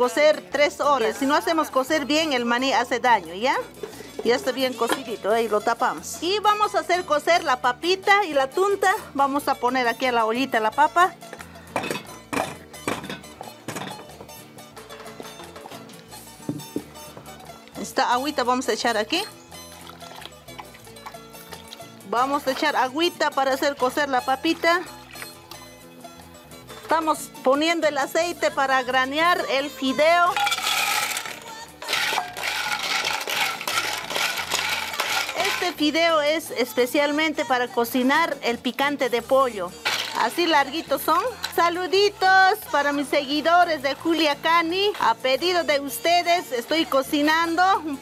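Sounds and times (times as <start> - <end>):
background music: 0.0 - 48.0
potatoes knocking into metal pot: 30.2 - 35.9, 39.8 - 41.7
dry pasta rattling in a pan: 30.3 - 35.9.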